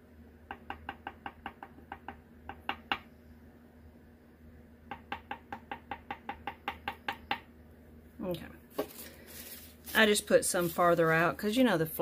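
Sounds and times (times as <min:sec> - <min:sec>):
paintbrush tapping on paper: 0:00.5 - 0:03.0, 0:04.9 - 0:07.5.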